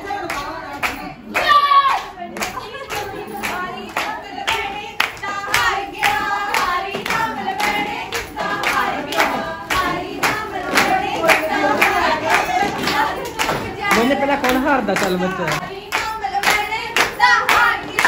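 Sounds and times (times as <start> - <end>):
women singing folk song: 0.0 - 14.2, 15.3 - 18.0
hands clapping: 0.0 - 18.0.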